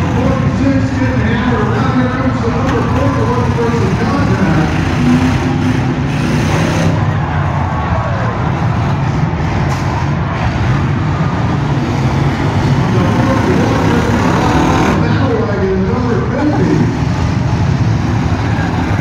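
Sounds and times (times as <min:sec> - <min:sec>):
car engines revving hard: 0:00.0 - 0:19.0.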